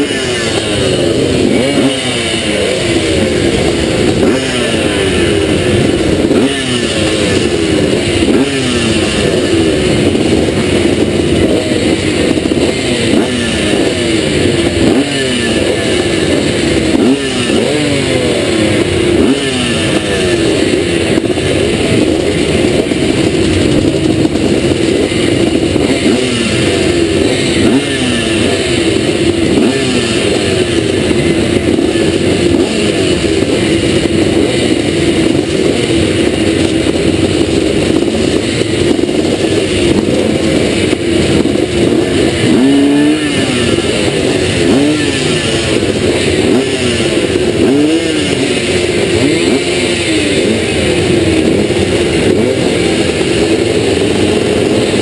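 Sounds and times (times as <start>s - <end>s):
motorcycles idling and revving: 0.0s - 55.0s.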